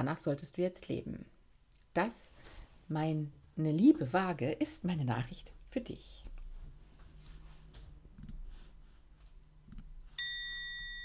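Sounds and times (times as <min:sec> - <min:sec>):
bright bell chime: 0:10.2 - 0:11.0.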